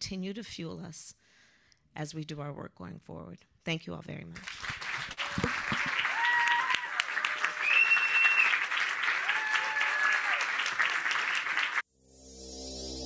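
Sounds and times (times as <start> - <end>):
audience applauding: 4.4 - 11.8.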